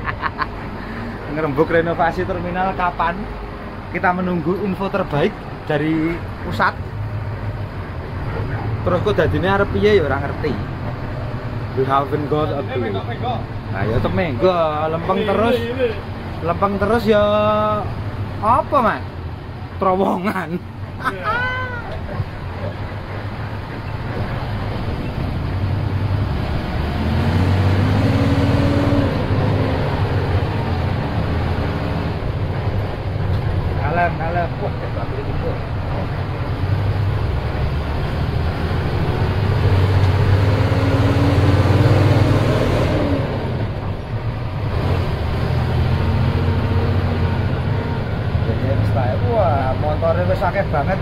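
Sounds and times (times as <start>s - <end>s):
bus diesel engine: 0.0s - 51.0s.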